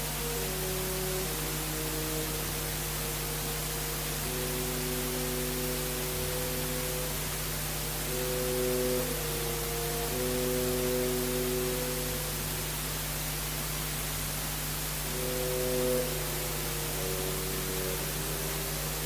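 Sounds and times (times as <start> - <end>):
orchestra playing held chords: 0.0 - 19.0
recording hiss and low hum: 0.0 - 19.0.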